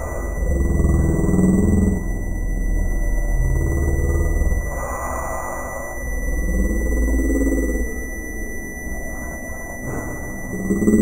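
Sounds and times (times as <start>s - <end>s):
high-pitched synthesizer whines: 0.0s - 11.0s
low synthesizer drone: 0.0s - 11.0s
mid-pitched synthesizer tones: 0.0s - 11.0s.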